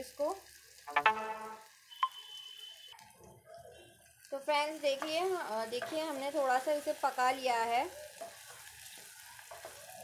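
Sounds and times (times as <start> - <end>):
vegetables sizzling in oil: 0.0 - 10.0
high steady tone: 0.9 - 2.2.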